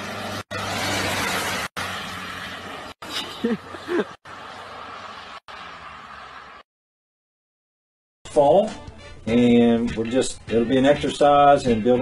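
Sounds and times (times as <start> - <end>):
van passing on snowy road: 0.0 - 6.7.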